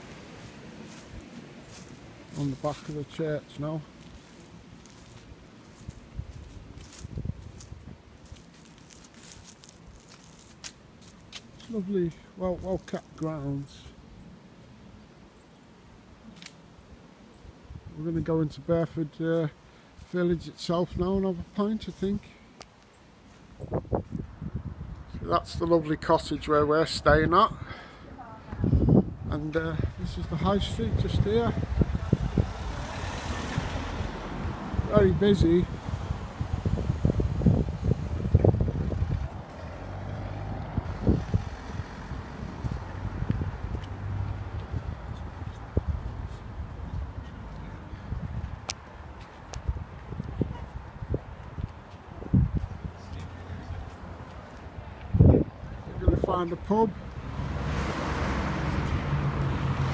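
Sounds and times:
footsteps on grass: 0:00.0 - 0:13.4, 0:21.4 - 0:24.2
car driving past: 0:31.7 - 0:34.9, 0:38.5 - 0:45.2, 0:57.1 - 0:59.9.

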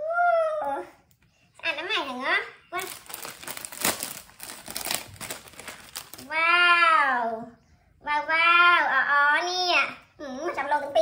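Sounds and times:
plastic bag crinkling: 0:02.8 - 0:06.4.

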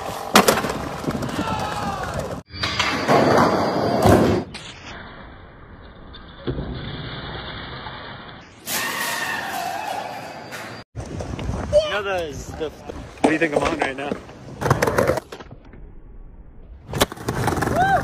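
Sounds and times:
skateboard knocks and slams: 0:00.2 - 0:01.4.

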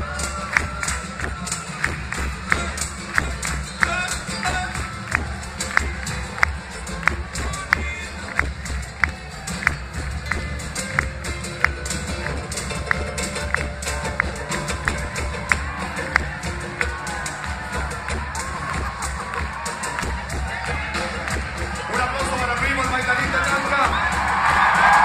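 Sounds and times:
acoustic guitars: 0:00.0 - 0:25.0
crowd noise: 0:00.0 - 0:25.0
drums: 0:00.0 - 0:25.0.

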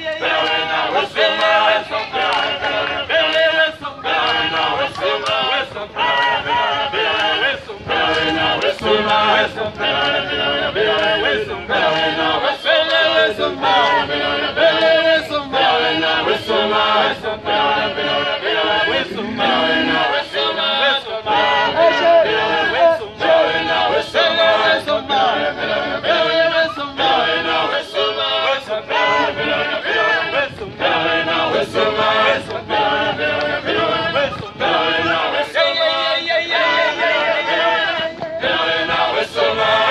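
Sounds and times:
choir singing a chant: 0:00.0 - 0:39.9.

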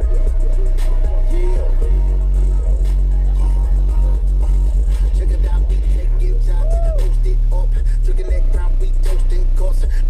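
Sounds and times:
loud music with deep bass: 0:00.0 - 0:10.0.

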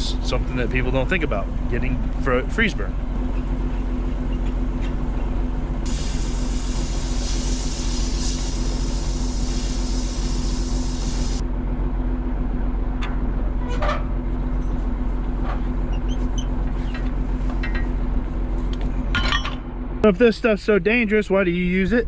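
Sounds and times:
tractor engine running: 0:00.0 - 0:21.8
loud hiss: 0:05.8 - 0:11.4.

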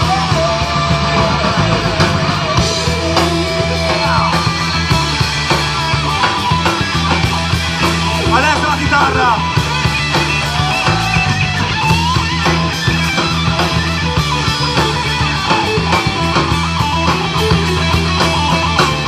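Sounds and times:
drum beat with cymbals: 0:00.0 - 0:19.0
electric guitar lead: 0:00.0 - 0:19.0.

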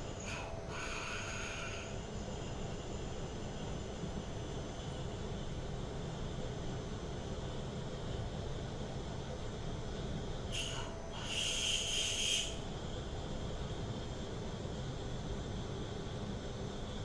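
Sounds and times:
drill cutting squeal: 0:10.6 - 0:12.5.

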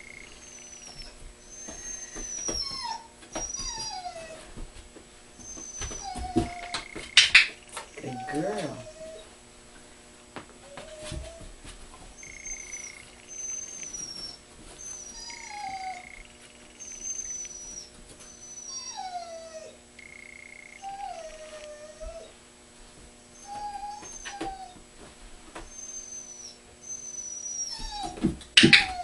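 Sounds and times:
dog whining and whimpering: 0:00.0 - 0:04.6, 0:05.4 - 0:09.4, 0:10.6 - 0:11.6, 0:12.2 - 0:22.4, 0:23.3 - 0:24.9, 0:25.6 - 0:29.0.

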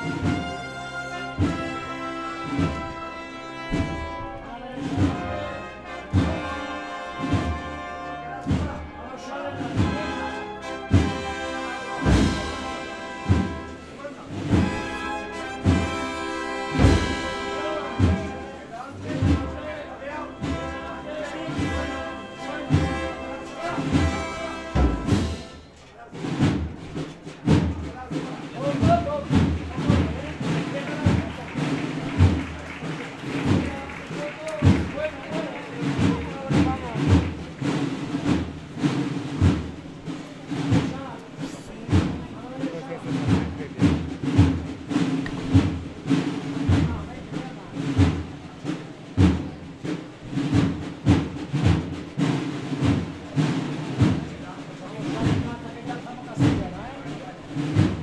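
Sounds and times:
brass band march: 0:00.0 - 0:58.0
crowd voices: 0:00.0 - 0:58.0
drums beating steadily: 0:00.0 - 0:58.0.

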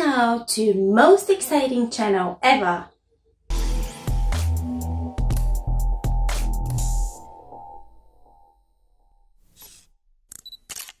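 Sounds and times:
camera shutter clicks: 0:09.6 - 0:11.0.

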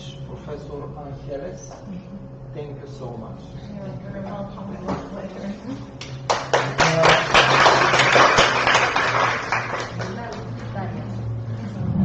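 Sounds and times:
people clapping: 0:06.0 - 0:10.8.

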